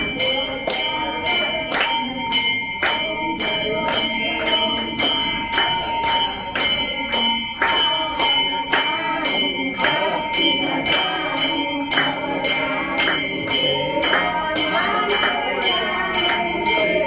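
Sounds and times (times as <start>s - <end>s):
temple bells ringing: 0.0s - 17.0s
voices singing along: 0.0s - 17.0s
hand clapping: 0.2s - 17.0s.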